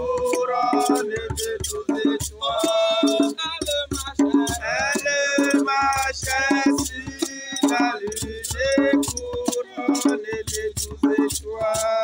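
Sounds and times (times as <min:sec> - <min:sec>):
hand drums: 0:00.0 - 0:12.0
person singing into a microphone: 0:00.0 - 0:12.0
rattle: 0:04.8 - 0:12.0.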